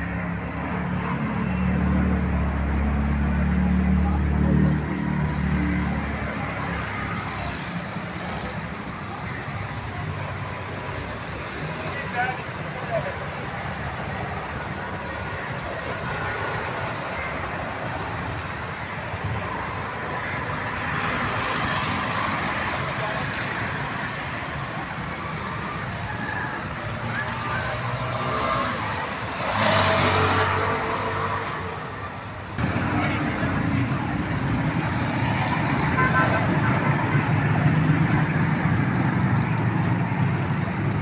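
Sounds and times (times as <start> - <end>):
road traffic: 0.0 - 41.0
voices: 3.2 - 41.0.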